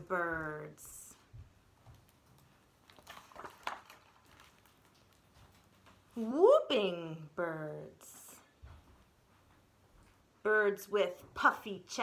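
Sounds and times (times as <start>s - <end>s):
book pages turning: 1.9s - 6.1s.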